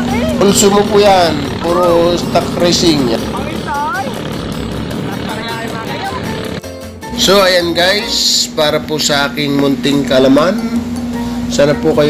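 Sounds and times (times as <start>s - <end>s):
distant boat engines buzzing: 0.0s - 12.0s.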